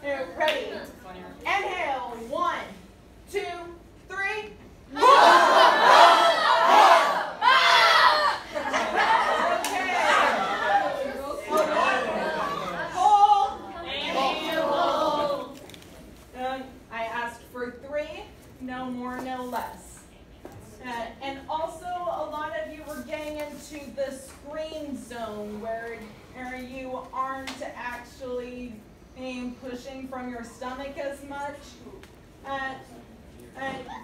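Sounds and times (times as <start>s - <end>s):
woman speaking: 0.0s - 4.6s
young voices chattering: 4.9s - 15.7s.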